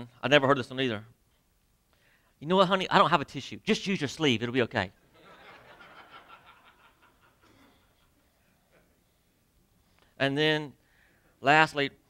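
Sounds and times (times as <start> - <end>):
faint congregation laughter: 5.2 - 9.0.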